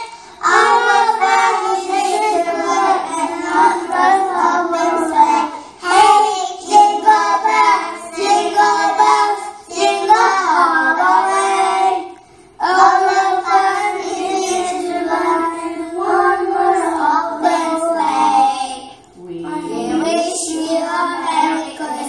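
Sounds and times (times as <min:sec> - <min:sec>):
young children singing: 0:00.0 - 0:22.0.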